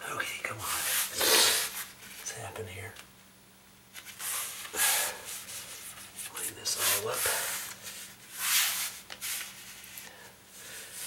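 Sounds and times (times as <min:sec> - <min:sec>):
gloved hands scuffing linoleum: 0:04.0 - 0:10.1.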